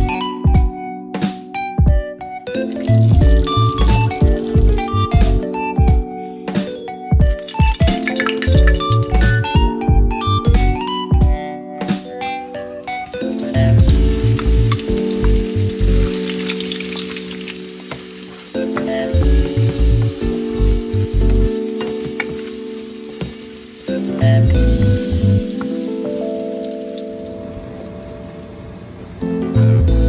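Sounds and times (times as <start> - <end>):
background music with beat: 0.0 - 27.4
hot dog pieces sizzling in pan: 2.5 - 5.1, 7.3 - 9.4, 12.4 - 28.5.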